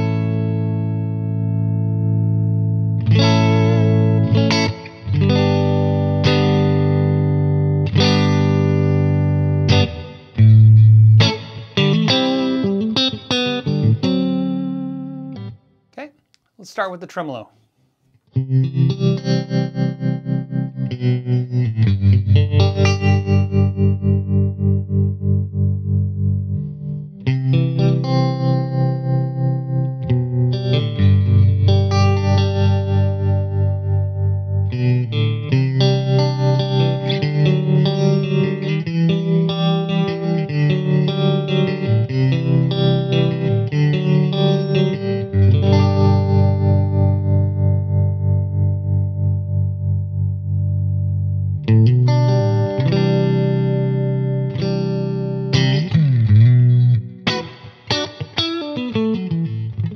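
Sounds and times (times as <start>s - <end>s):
electric guitar chords with tremolo: 0.0s - 15.7s, 18.3s - 59.9s.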